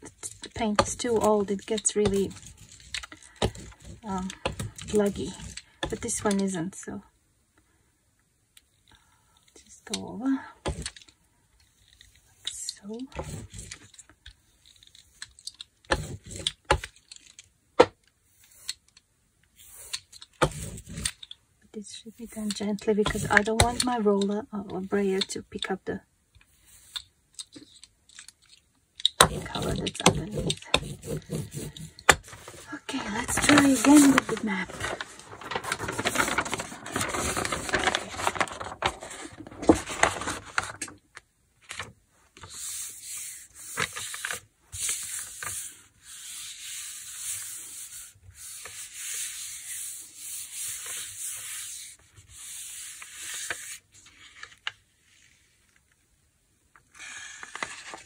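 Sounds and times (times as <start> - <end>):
paper rustling: 29.2 - 40.9, 41.6 - 55.8, 56.9 - 58.0
hand rubbing paper: 29.3 - 39.3, 42.4 - 54.2.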